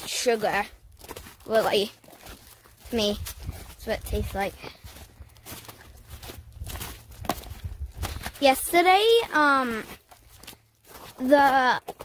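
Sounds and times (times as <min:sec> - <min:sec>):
footsteps in snow and forest litter: 0:00.0 - 0:12.0.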